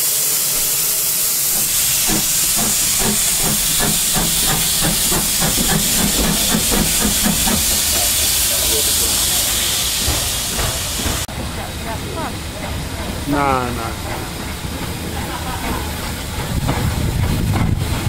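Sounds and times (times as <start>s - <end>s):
steam hissing: 0.0s - 18.0s
locomotive exhaust beats: 1.4s - 18.0s.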